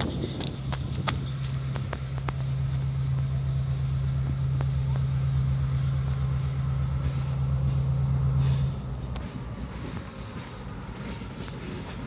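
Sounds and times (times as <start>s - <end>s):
diesel locomotive engine running: 0.0s - 12.0s.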